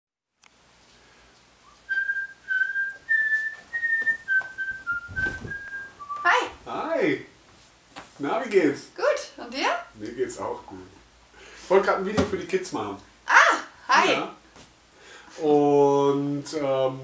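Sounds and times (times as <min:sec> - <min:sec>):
man whistling a slow tune: 0:01.6 - 0:06.2.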